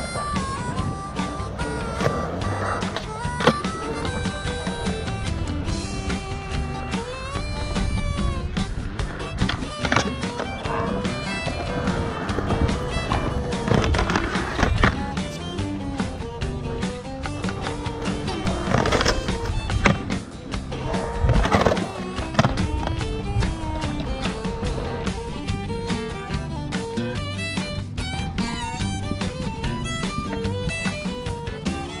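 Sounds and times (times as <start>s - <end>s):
music: 0.0s - 32.0s
skateboard grinding on ledge: 0.0s - 32.0s
skateboard wheels rolling on concrete: 0.0s - 32.0s
skateboard impacts: 0.1s - 32.0s.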